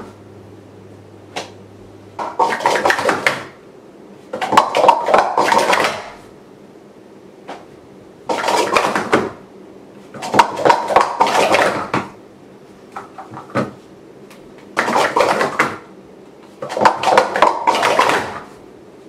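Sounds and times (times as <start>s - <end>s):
plastic cups clattering: 2.2s - 3.5s, 4.4s - 6.0s, 8.3s - 9.3s, 10.2s - 12.1s, 14.8s - 15.8s, 16.6s - 18.4s.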